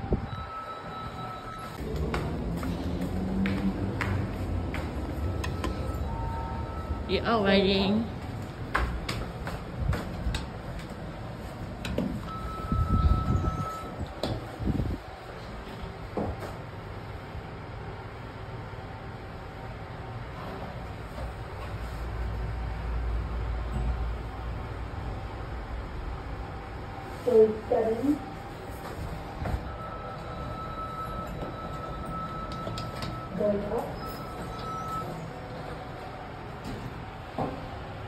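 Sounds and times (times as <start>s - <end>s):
short steady beep: 0.0s - 1.8s, 5.2s - 7.5s, 12.3s - 14.0s, 29.7s - 33.4s, 34.0s - 35.2s
lift car low hum: 0.0s - 38.0s.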